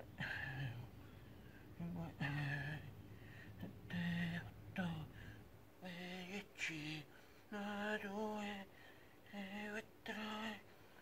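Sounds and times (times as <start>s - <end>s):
man singing held tones: 1.8s - 2.9s.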